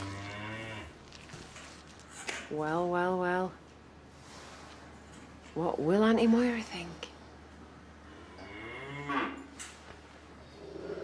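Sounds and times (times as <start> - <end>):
cow mooing: 0.0 - 1.0, 8.4 - 9.5.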